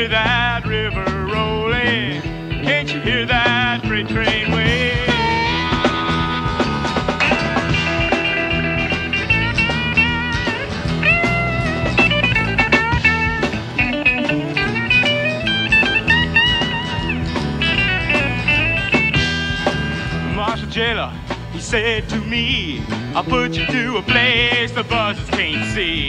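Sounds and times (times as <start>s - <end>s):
country rock band playing: 0.0s - 26.0s
lead guitar bending notes: 0.0s - 26.0s.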